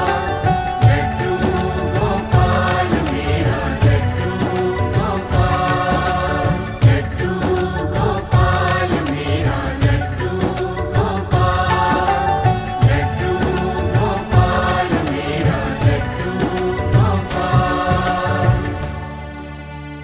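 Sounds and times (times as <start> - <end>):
steady drum beat: 0.0 - 18.9
devotional music: 0.0 - 20.0.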